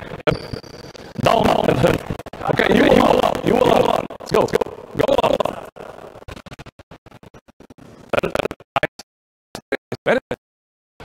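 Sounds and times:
voices: 0.0 - 6.1.

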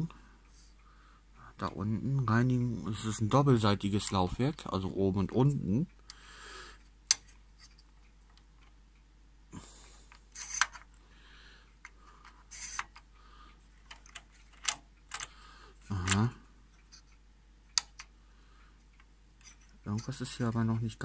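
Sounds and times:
soft scraping and rubbing: 19.4 - 21.0.

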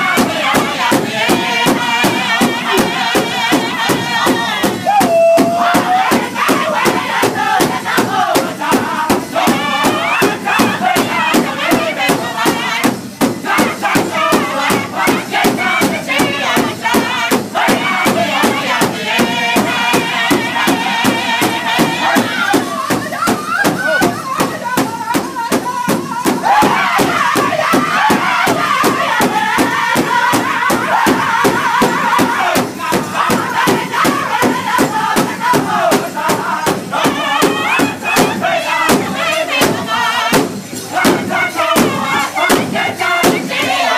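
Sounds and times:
drum group singing in high voices: 0.0 - 43.9
large hide drum beating: 0.0 - 43.9
women singing along: 0.0 - 43.9.

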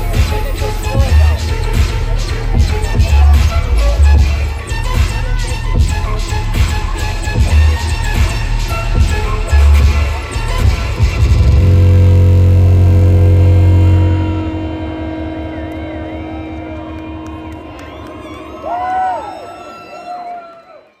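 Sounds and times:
dubstep through sound system: 0.0 - 17.5
held bass note and chord: 0.0 - 19.7
sliding wavering high tones: 5.2 - 20.4.

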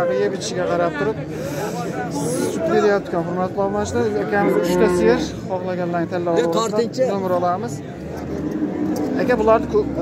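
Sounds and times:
men talking in background: 0.0 - 10.0.

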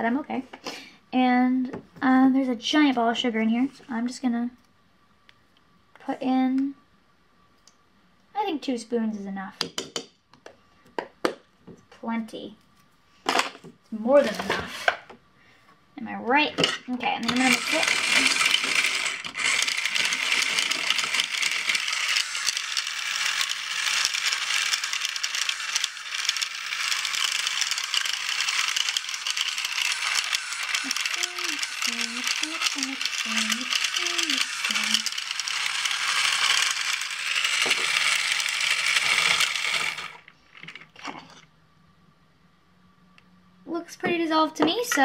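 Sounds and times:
handheld mixer whirring: 17.2 - 40.7.

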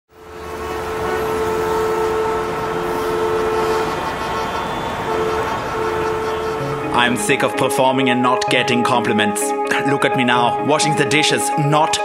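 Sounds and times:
horn-like drone: 0.1 - 8.1.

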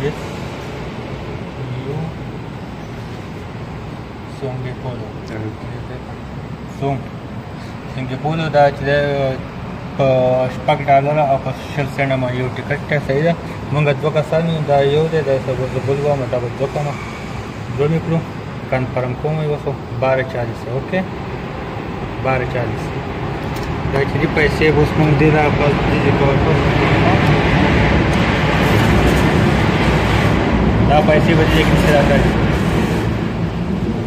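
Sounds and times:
man talking: 0.0 - 0.2, 1.6 - 2.2, 4.3 - 7.1, 7.9 - 9.4, 10.0 - 17.0, 17.7 - 21.2, 22.2 - 23.0, 23.8 - 27.6, 30.8 - 32.4
station rumble and hiss: 0.0 - 34.0
steady background noise: 0.0 - 34.0.

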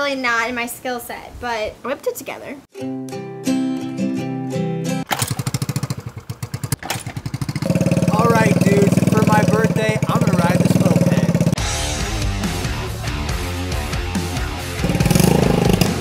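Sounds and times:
moped engine idling: 5.3 - 11.6
man talking: 8.0 - 11.6.

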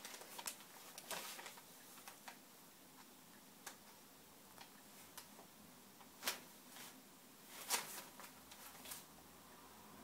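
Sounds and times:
wrapping paper crinkling: 0.0 - 2.4.

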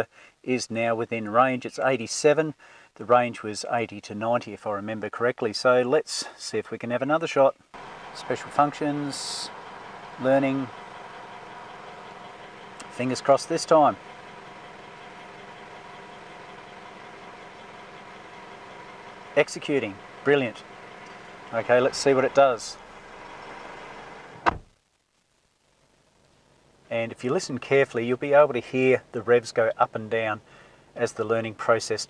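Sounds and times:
diesel engine idling: 7.7 - 24.4, 30.2 - 31.0.

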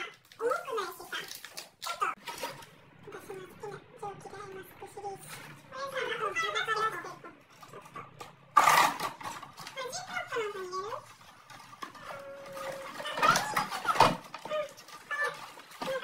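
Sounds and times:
voices gliding up and down: 2.0 - 16.0.

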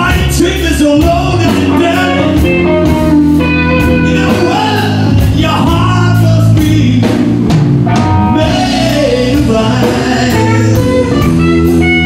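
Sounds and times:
live blues band playing: 0.0 - 12.0.

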